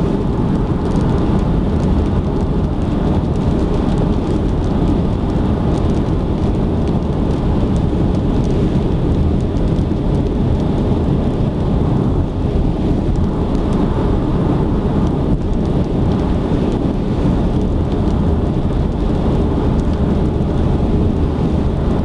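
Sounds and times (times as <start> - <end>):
car road and wind noise: 0.0 - 22.0.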